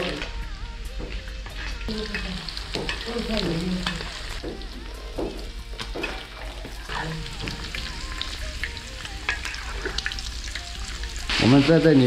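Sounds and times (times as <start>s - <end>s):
meat sizzling in oil: 0.0s - 0.4s, 1.8s - 12.0s.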